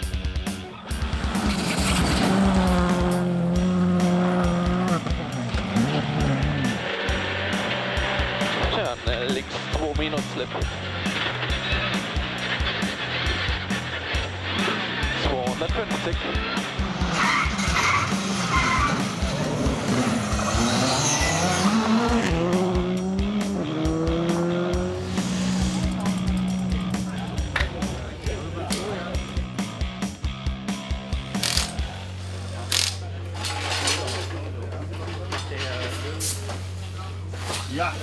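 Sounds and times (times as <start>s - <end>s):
rally car accelerating: 0.7s - 31.0s.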